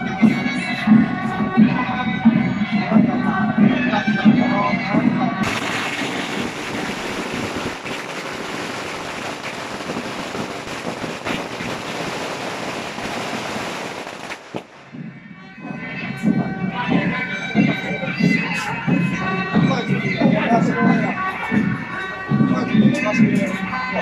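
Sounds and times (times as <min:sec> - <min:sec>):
procession music: 0:00.0 - 0:24.0
firecrackers crackling: 0:05.4 - 0:15.1.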